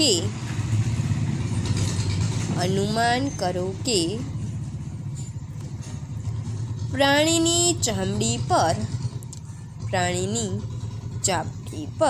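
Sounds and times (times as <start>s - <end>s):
low pulsing mechanical rumble: 0.0s - 12.0s.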